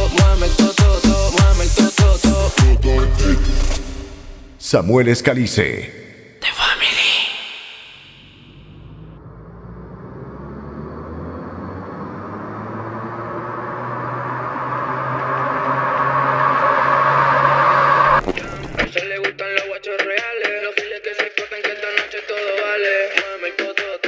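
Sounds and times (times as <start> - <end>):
electronic riser rumbling swell: 7.4 - 18.9.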